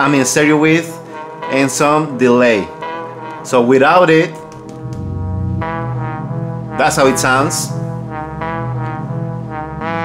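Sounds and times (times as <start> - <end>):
trumpet melody: 0.0 - 10.0.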